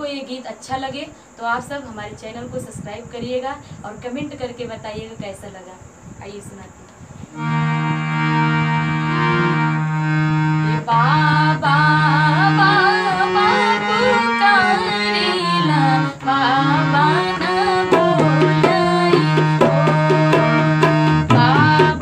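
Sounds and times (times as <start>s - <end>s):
harmonium chords: 7.3s - 22.0s
woman singing: 10.8s - 22.0s
tabla rhythm: 16.9s - 22.0s.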